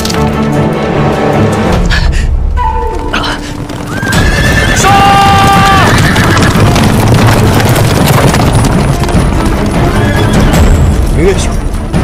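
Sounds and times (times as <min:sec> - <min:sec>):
horses galloping: 0:03.1 - 0:11.5
horse neighs: 0:03.9 - 0:06.9, 0:09.8 - 0:10.6.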